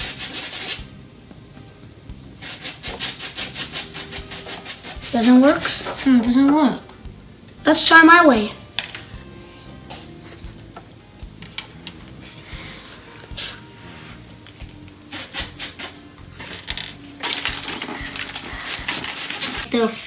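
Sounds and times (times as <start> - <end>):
clicks and rustles of wires: 16.4 - 19.7
aluminium foil crinkling: 17.2 - 19.8.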